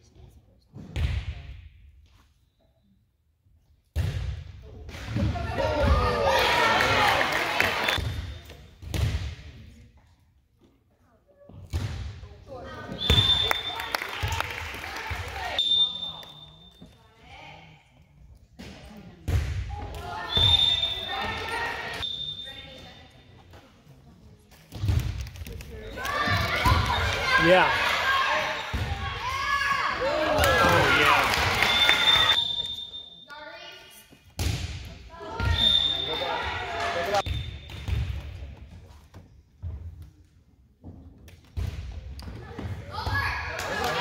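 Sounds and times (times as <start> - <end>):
crowd shouting and cheering: 5.3 - 8.0, 20.0 - 22.0, 25.8 - 32.4, 35.2 - 37.3
referee whistle: 12.9 - 14.1, 15.6 - 16.8, 20.2 - 22.8, 30.3 - 33.3, 35.4 - 37.7.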